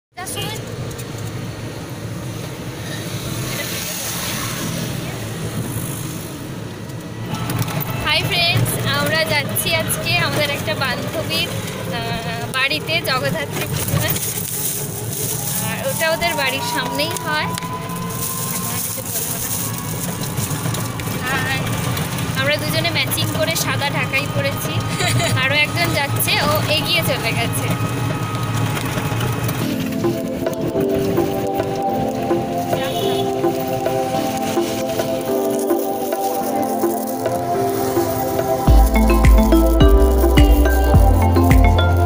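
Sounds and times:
motor vehicle low rumble: 0.2 - 42.0.

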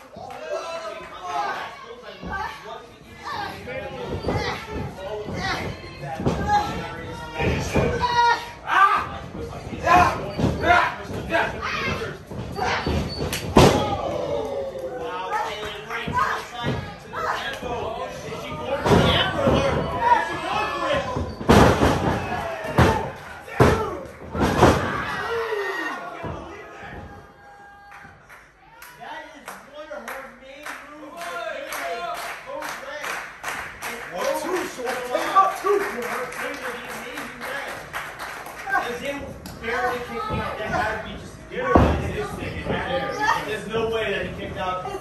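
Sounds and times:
bodies slamming on wrestling ring: 21.2 - 25.1.

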